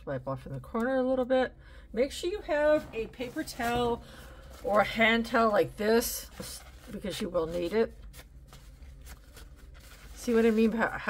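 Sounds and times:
paper towel rustling: 2.4 - 11.0.

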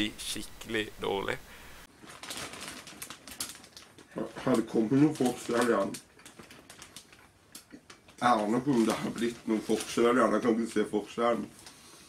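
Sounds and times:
plastic bag crinkling: 1.9 - 11.8.

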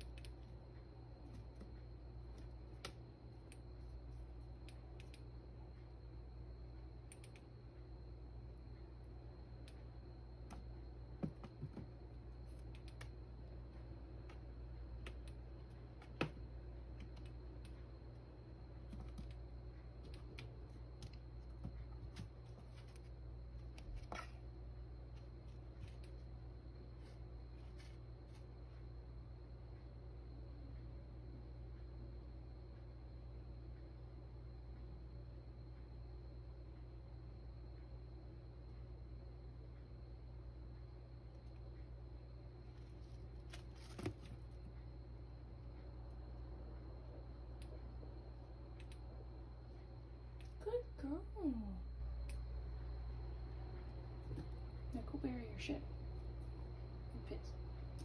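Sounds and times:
low hum: 0.0 - 58.0
kitten scuffling in cat litter: 20.0 - 26.3, 26.9 - 28.6, 42.6 - 44.8.

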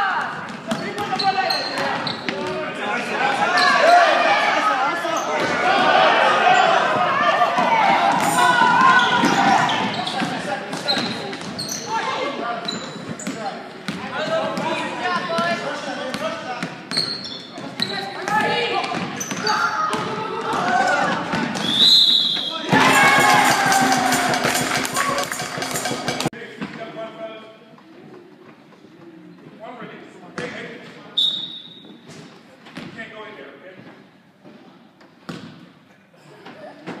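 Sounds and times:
players and spectators shouting: 2.8 - 10.2, 22.5 - 26.2.

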